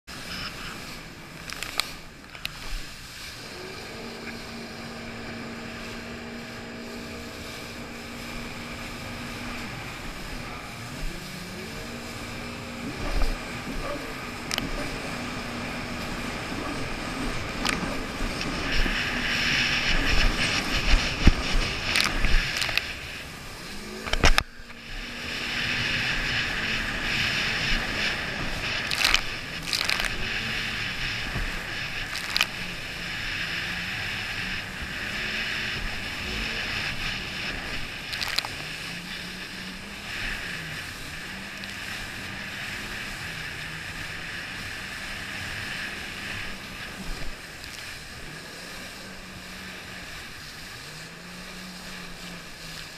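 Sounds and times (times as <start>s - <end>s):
jet ski engine: 0.0s - 52.9s
water spray and wind rush: 0.0s - 52.9s.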